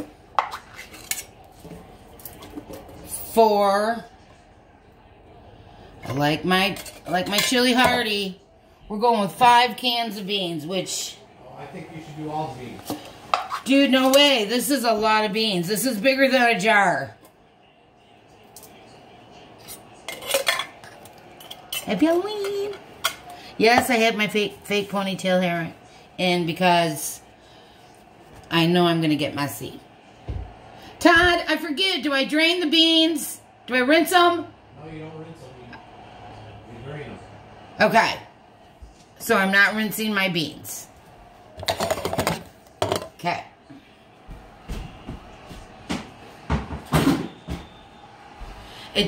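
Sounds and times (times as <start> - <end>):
tin cans clinking: 20.0 - 23.4, 41.6 - 43.2
can knocking: 41.6 - 43.2.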